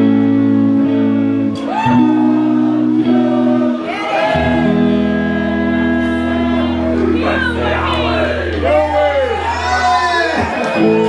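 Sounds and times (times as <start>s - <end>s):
person singing: 0.0s - 8.4s
deep bass chord: 0.0s - 11.0s
held keyboard chords: 0.0s - 11.0s.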